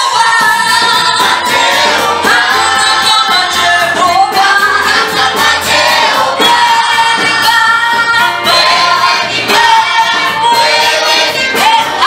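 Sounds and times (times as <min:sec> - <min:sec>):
steady beat: 0:00.0 - 0:12.0
women singing a church song: 0:00.0 - 0:12.0.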